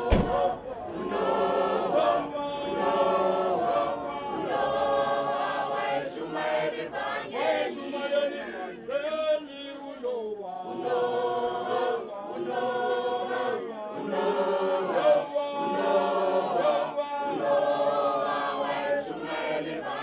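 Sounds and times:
students singing unaccompanied: 0.0 - 20.0.

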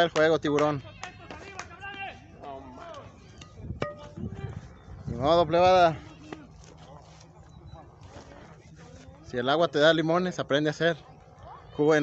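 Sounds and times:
people talking in background: 0.0 - 12.0.

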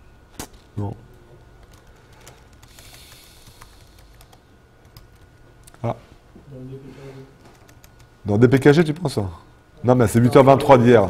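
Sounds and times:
laptop keyboard typing: 1.6 - 5.8, 7.5 - 9.2.

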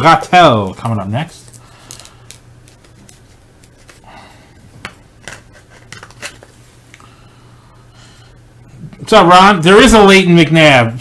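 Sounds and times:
low steady hum: 0.0 - 11.0
plastic rustling: 0.8 - 4.1.

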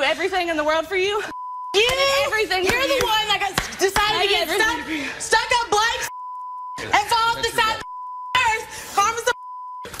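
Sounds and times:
censor bleep tone: 7.8 - 8.5, 9.3 - 9.9.

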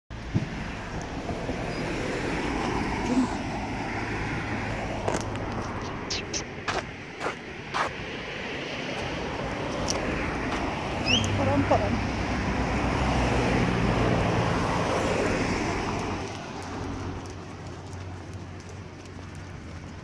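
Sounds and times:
distant road traffic: 0.1 - 20.0
wind: 0.1 - 20.0.

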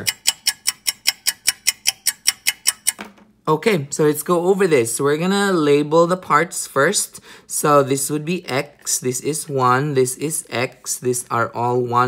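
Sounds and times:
clock ticking fast: 0.0 - 3.0.

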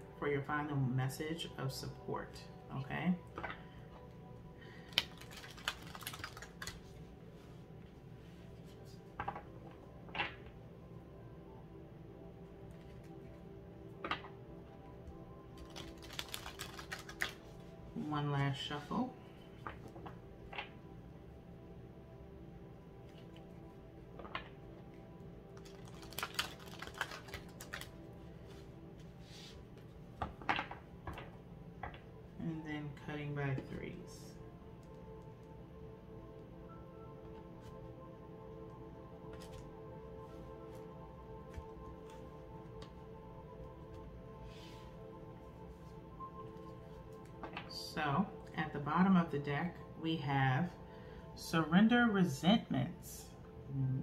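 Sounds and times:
soft background music: 0.0 - 54.0
cards clacking and rustling: 4.9 - 7.0, 15.5 - 17.7, 25.6 - 28.1, 39.3 - 39.7.

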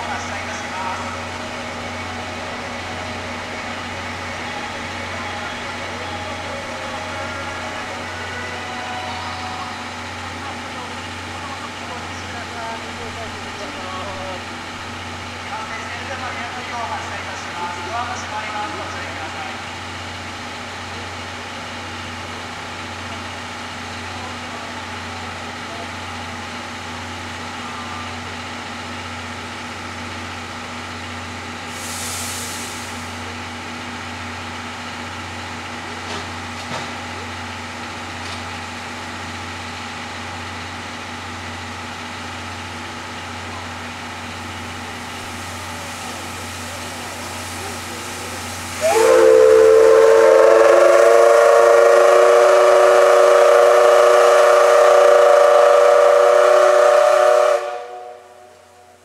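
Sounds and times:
steam locomotive hissing and humming: 0.0 - 59.0
burst of steam hiss: 31.7 - 33.3, 45.1 - 50.2
steam whistle blast: 48.6 - 59.0.

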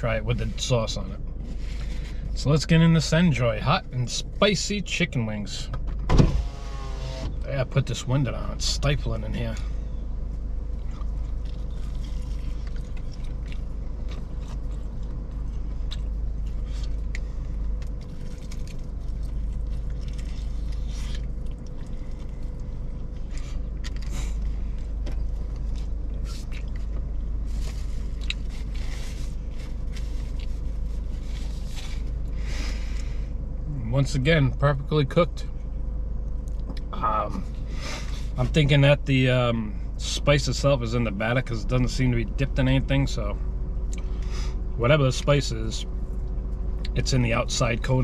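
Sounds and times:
low steady rumble: 0.0 - 48.0
chewing crispy chicken crunches: 10.7 - 32.4.

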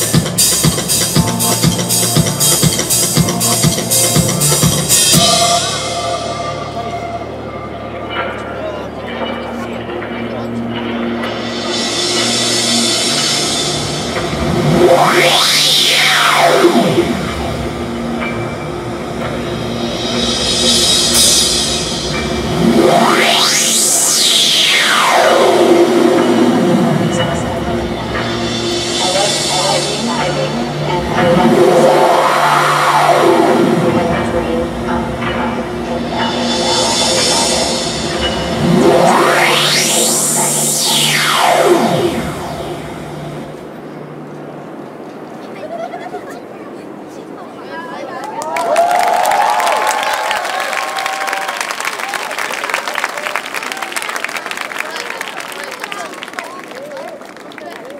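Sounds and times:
drum kit playing: 0.0 - 6.3, 16.7 - 24.7
electronic backing track: 0.0 - 44.4
low drone: 0.0 - 45.8
sweeping synth effect: 0.0 - 45.9
hissing rise: 11.3 - 44.8.

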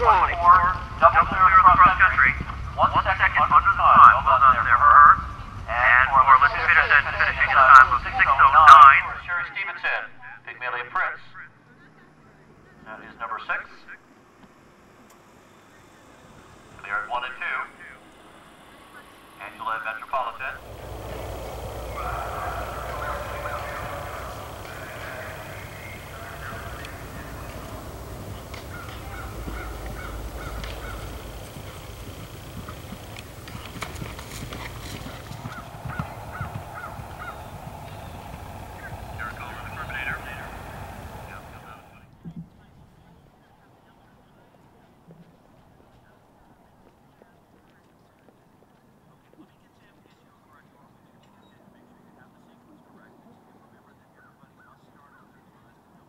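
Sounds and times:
indistinct speech: 0.0 - 14.1, 15.4 - 45.0
faint voices: 0.0 - 56.0
low rumble: 15.6 - 42.0.

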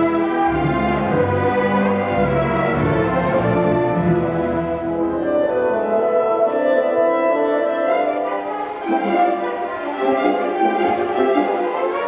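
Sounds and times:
orchestra bowed strings sustained chords: 0.0 - 12.0.

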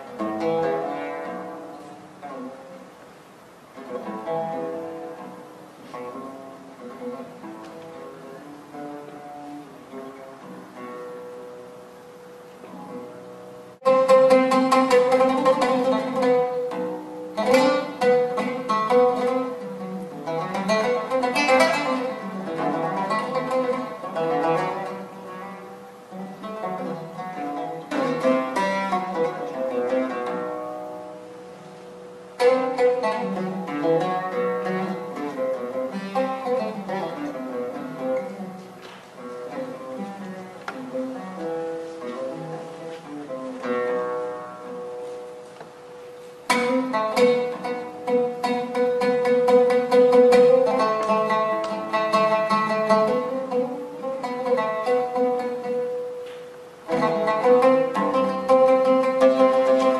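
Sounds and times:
oud strings plucked: 3.8 - 59.9.

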